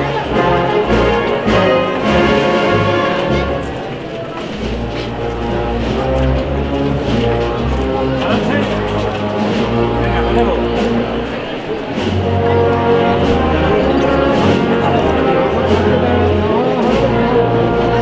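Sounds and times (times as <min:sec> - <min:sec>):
crowd voices talking: 0:00.0 - 0:18.0
wind band playing a march: 0:00.0 - 0:18.0.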